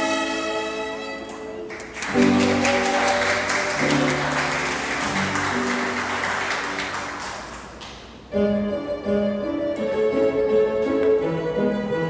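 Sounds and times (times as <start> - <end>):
piano chords: 0.0 - 12.0
audience applauding: 1.7 - 8.1.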